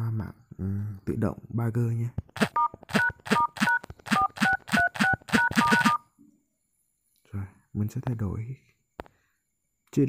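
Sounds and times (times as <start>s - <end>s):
phone dial-pad beeps: 2.5s - 6.0s.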